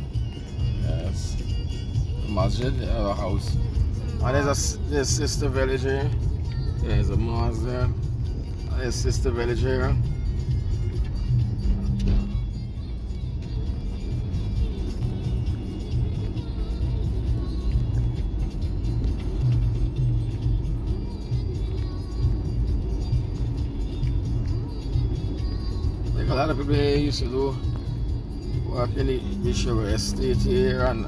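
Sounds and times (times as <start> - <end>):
car engine and road rumble: 0.0 - 31.0
music playing: 0.0 - 31.0.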